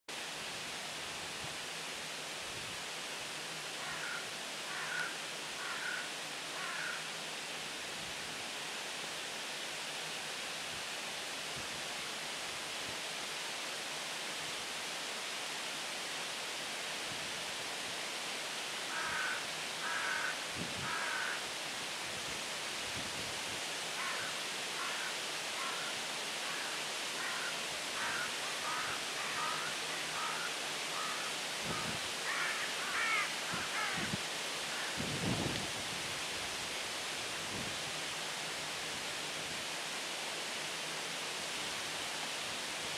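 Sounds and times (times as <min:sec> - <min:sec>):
steady outdoor hiss: 0:00.1 - 0:42.9.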